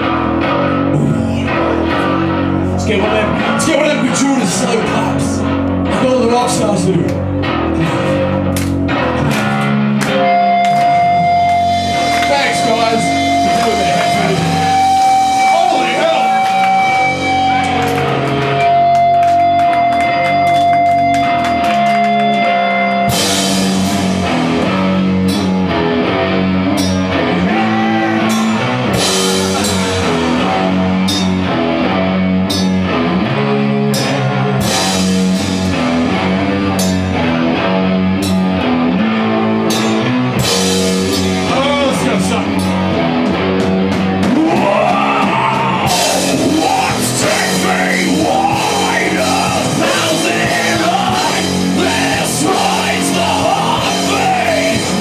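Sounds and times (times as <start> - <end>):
heavy rock band playing: 0.0 - 55.0
vocals: 0.7 - 8.2, 12.2 - 17.5, 27.2 - 31.2, 41.3 - 43.0, 44.2 - 55.0.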